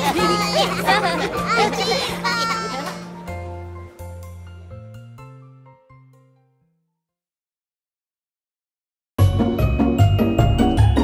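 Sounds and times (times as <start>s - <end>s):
bright children's music: 0.0s - 6.5s, 9.2s - 11.0s.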